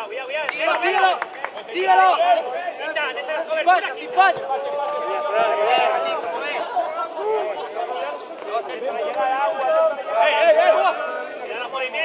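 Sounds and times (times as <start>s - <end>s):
people shouting: 0.7s - 8.2s.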